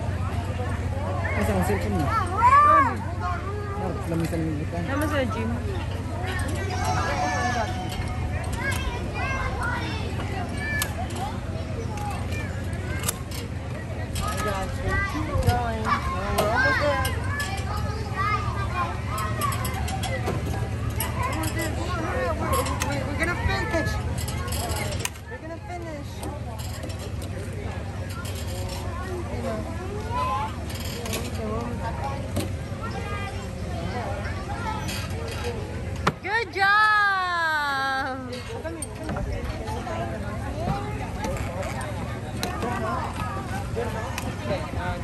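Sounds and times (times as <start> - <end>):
children calling and chattering: 0.0 - 45.0.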